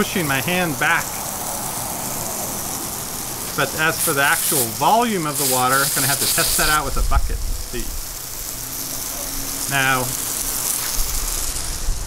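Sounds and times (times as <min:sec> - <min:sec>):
water jetting from hose: 0:00.0 - 0:12.0.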